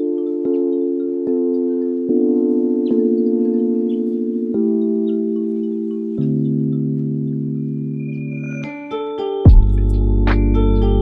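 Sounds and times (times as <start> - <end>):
chime-like synth chords: 0.0 - 11.0.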